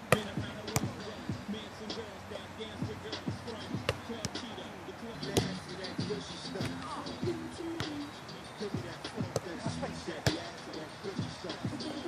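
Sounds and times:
background voices: 0.0s - 12.0s.

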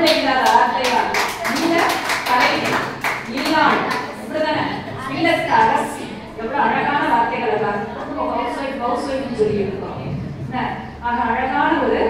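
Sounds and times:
hands clapping in a hall: 0.0s - 4.1s
woman's voice: 0.0s - 12.0s.

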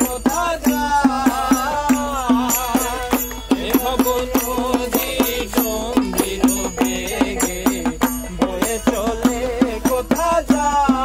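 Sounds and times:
hand drum rhythm: 0.0s - 11.0s
person chanting folk song: 0.0s - 11.0s.

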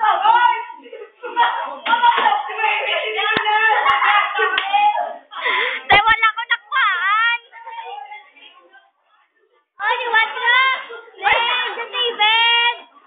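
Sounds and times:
young voices talking and calling: 0.0s - 13.0s
hand claps: 3.3s - 3.6s, 4.5s - 4.8s.

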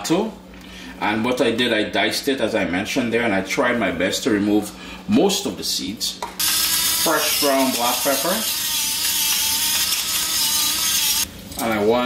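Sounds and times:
pepper mill grinding: 6.4s - 11.3s.

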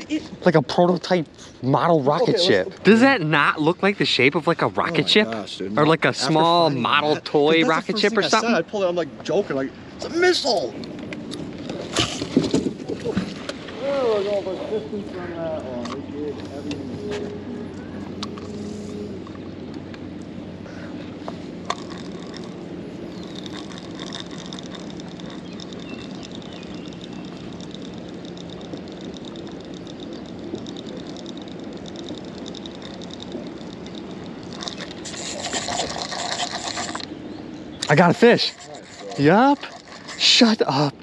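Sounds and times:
steady low hum: 0.0s - 41.0s
fishing reel ticking whir: 21.2s - 37.2s, 37.8s - 40.6s.

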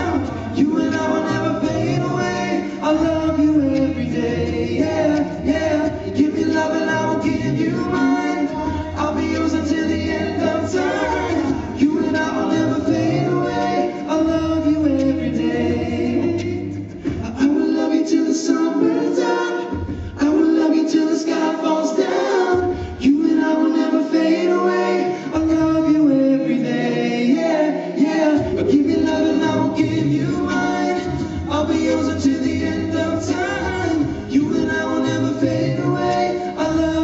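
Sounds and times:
male a cappella group singing: 0.0s - 37.0s.

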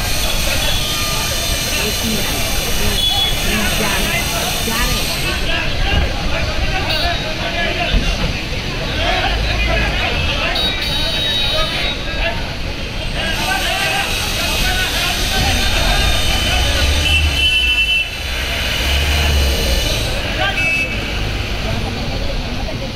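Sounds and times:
crowd chattering: 0.0s - 22.9s
vehicle and motorbike traffic: 0.0s - 22.9s.

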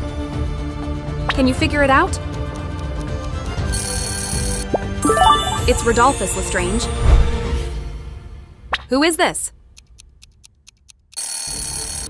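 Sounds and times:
alarm bell ringing: 5.0s - 7.0s.

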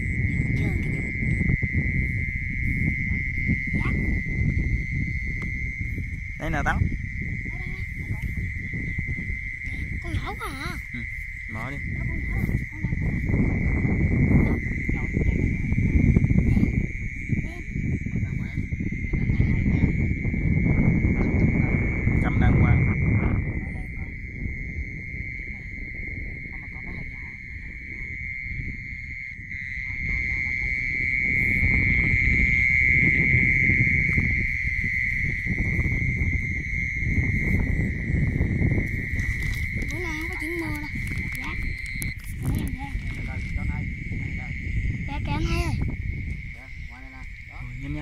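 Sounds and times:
high-pitched chorus of night animals: 0.0s - 48.0s
low rumble on microphone: 0.0s - 48.0s.

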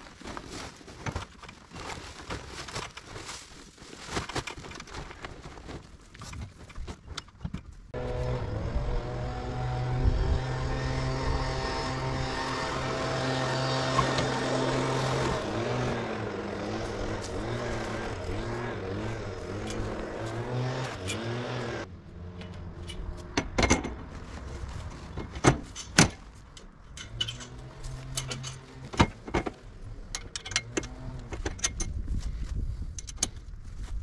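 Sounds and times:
engine running: 7.9s - 25.7s, 26.4s - 32.3s.

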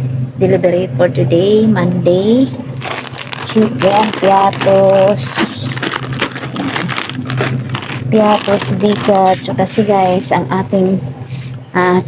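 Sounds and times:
plastic snack bags crinkling: 2.8s - 9.8s.

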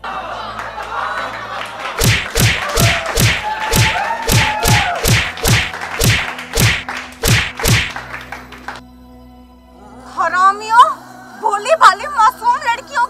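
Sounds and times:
punch sound effects: 2.0s - 8.0s.

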